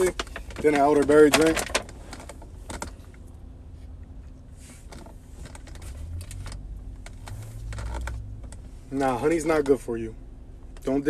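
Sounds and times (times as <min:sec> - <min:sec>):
low car cabin hum: 0:00.0 - 0:11.0.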